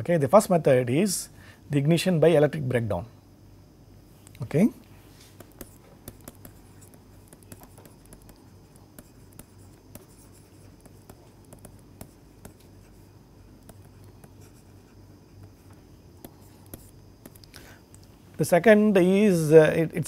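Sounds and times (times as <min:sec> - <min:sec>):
low steady hum: 0:00.0 - 0:20.0
stylus tapping and scratching: 0:05.3 - 0:18.1.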